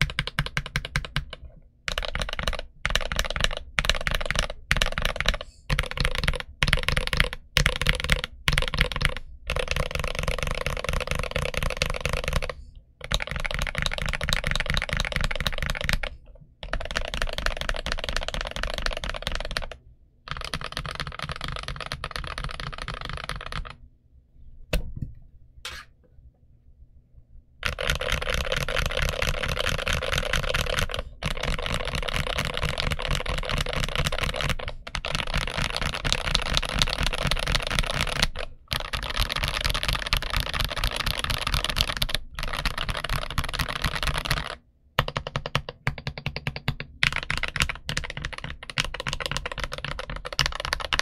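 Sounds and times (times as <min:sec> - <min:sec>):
fast typing on mechanical keyboard: 0:00.0 - 0:23.8, 0:27.6 - 0:51.0.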